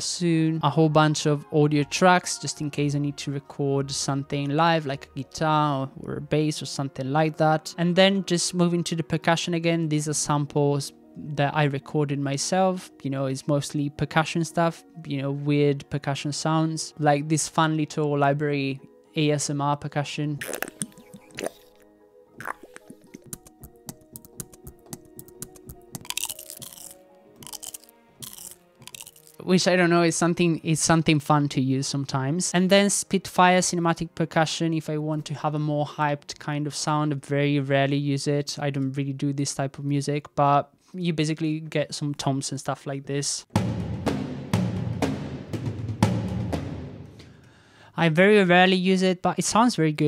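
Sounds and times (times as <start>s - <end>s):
crisp clicks and taps: 22.8s - 26.4s
deep tom drum hits: 43.5s - 47.3s.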